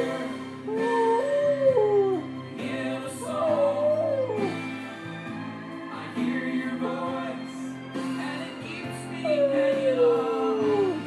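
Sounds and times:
dog howling: 0.0 - 4.8, 9.1 - 11.0
music: 0.0 - 11.0.

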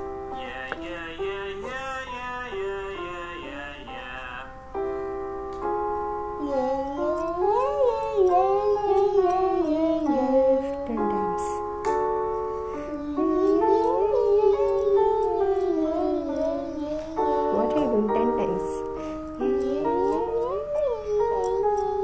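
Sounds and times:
keyboard playing held notes: 0.0 - 22.0
boy singing vocal exercise: 0.3 - 4.6, 6.4 - 11.6, 12.7 - 22.0.

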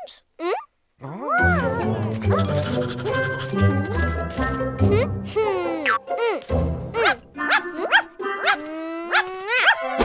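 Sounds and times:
cartoon puppy yipping: 7.0 - 9.9.

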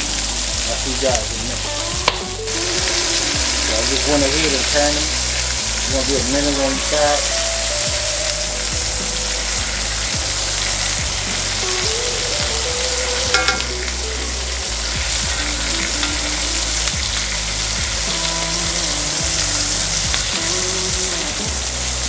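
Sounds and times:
steaks sizzling in a skillet: 0.0 - 22.0.

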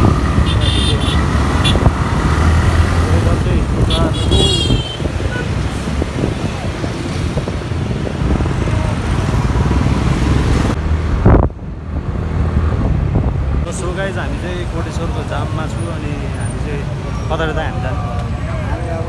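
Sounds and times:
vehicle engine and road noise: 0.0 - 19.0.

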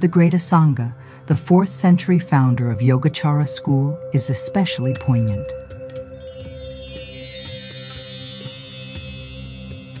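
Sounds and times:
chimes ringing: 2.3 - 10.0.

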